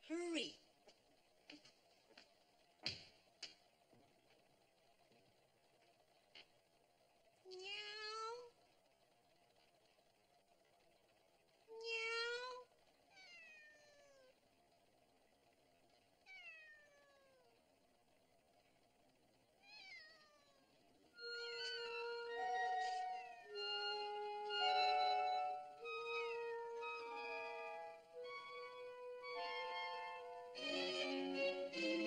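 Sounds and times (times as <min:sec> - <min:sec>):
cat meowing: 0:11.9 - 0:14.3, 0:16.3 - 0:17.6, 0:19.6 - 0:20.7.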